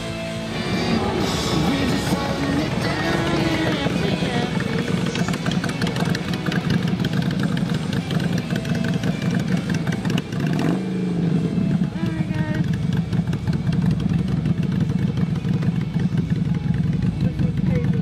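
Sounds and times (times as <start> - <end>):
motorcycle engines idling: 0.0 - 18.0.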